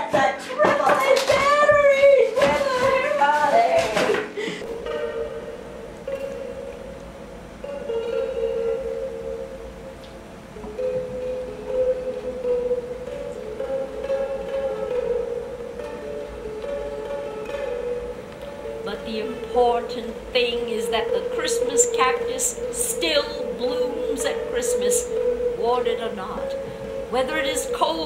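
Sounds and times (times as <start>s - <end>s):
slow quiet melody: 4.3s - 28.0s.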